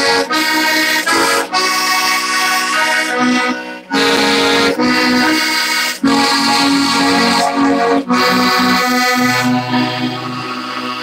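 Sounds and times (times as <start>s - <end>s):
accordion playing a tune: 0.0s - 11.0s.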